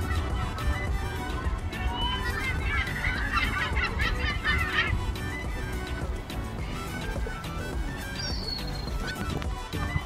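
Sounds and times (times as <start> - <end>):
gulls squawking: 0.0 - 10.0.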